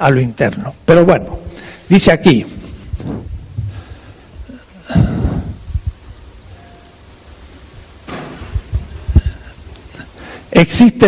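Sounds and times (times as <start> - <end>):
microphone line hum: 2.5 - 10.0
low thumps: 2.6 - 6.2.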